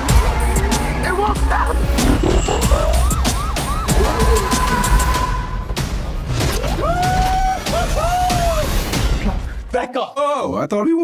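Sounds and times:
police siren yelping: 0:02.4 - 0:05.3.

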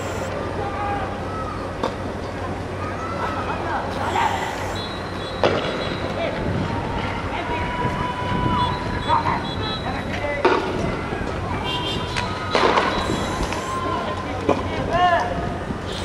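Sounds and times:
people shouting: 0:11.6 - 0:14.2.

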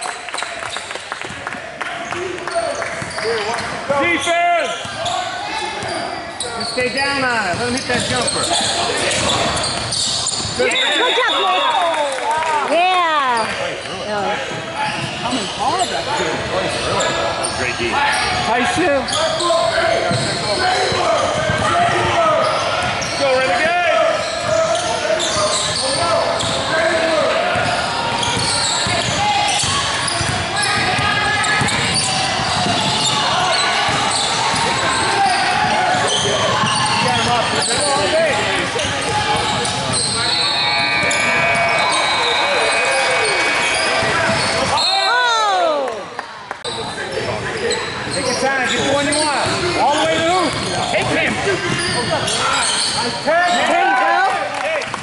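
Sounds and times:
shouts and chatter: 0:01.5 - 0:55.0
referee's whistle: 0:09.6 - 0:12.0, 0:39.6 - 0:45.4.

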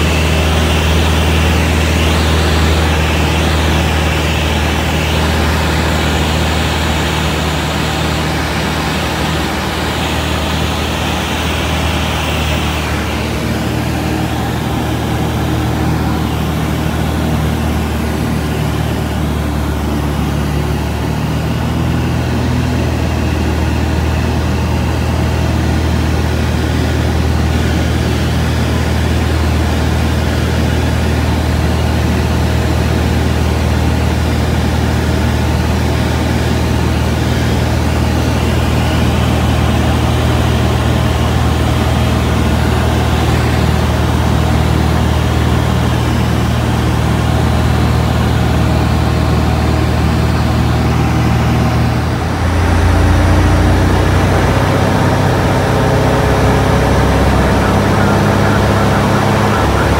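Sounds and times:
aircraft engine droning in cabin: 0:00.0 - 0:59.9.

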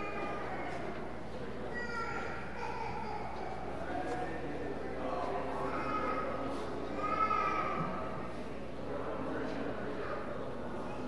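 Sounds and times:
murmur of people talking: 0:00.0 - 0:11.0.

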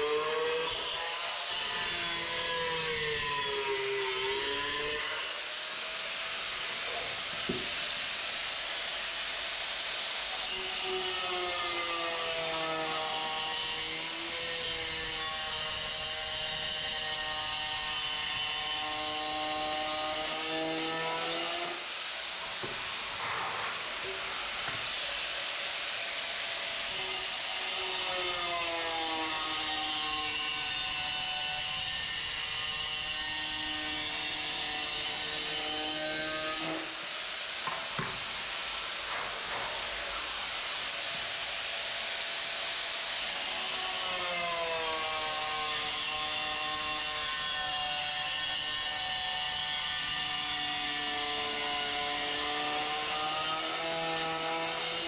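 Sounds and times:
angle grinder cutting tile: 0:00.0 - 0:55.0.

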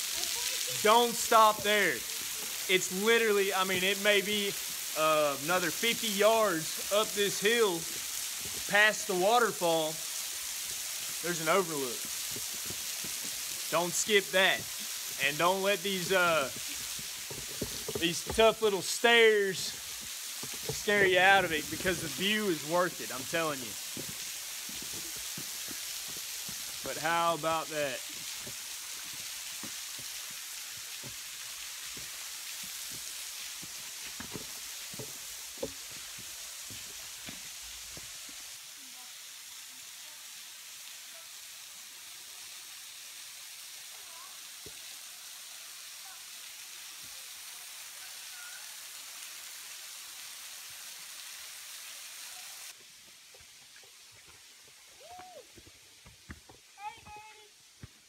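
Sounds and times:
waterfall splattering on rocks: 0:00.0 - 0:58.0
footsteps on rock: 0:16.5 - 0:18.6, 0:19.8 - 0:22.1, 0:23.8 - 0:26.9, 0:32.9 - 0:38.1, 0:52.8 - 0:57.2, 0:57.8 - 0:58.0.

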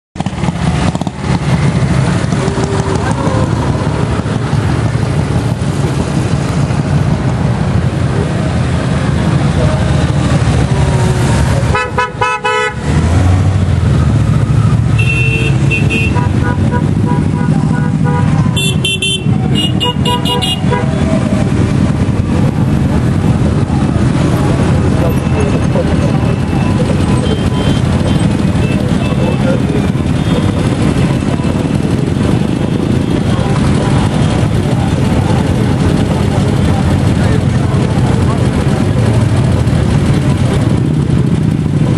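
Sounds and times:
motorcycle engines running: 0:00.2 - 0:41.9
motorcycle horns tooting: 0:11.6 - 0:13.2, 0:14.8 - 0:21.5, 0:24.9 - 0:34.4.

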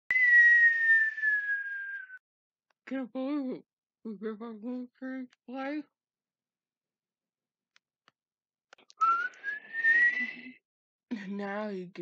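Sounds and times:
boy whistling through nose: 0:00.1 - 0:02.2, 0:09.0 - 0:10.6.

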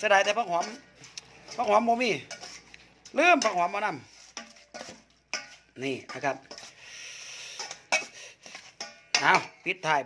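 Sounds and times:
metal spoon scraping steel bowl: 0:00.0 - 0:09.8.

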